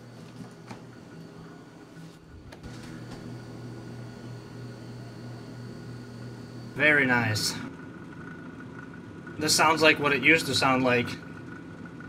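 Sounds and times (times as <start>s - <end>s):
refrigerator freezer humming: 0.0s - 12.0s.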